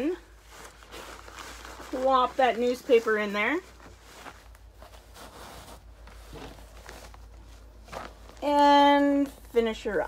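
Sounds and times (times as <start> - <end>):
newspaper rustling and crinkling: 0.0 - 10.0.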